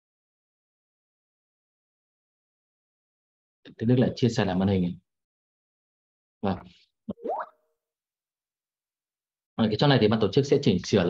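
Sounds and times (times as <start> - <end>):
computer notification blip: 7.1 - 7.5.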